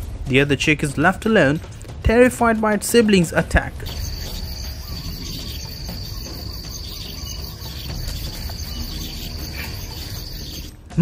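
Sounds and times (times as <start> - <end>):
insect trill: 3.8 - 10.8.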